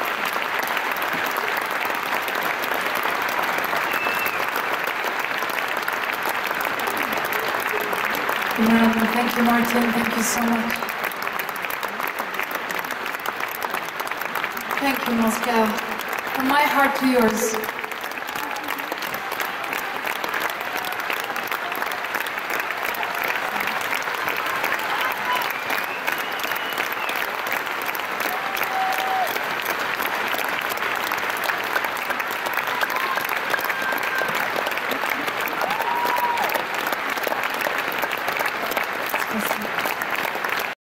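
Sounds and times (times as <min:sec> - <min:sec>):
audience applauding: 0:00.0 - 0:40.8
calls from crowd: 0:00.0 - 0:40.8.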